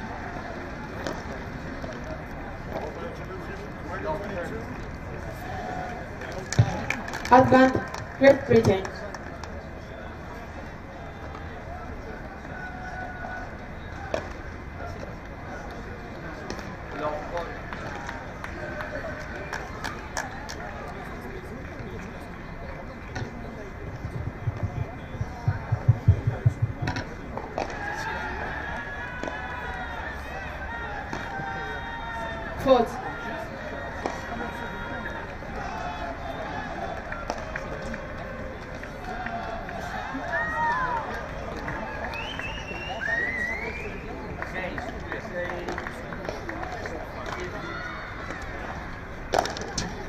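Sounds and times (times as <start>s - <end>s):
background voices and chatter: 0.0s - 50.0s
low thumps: 23.9s - 27.1s.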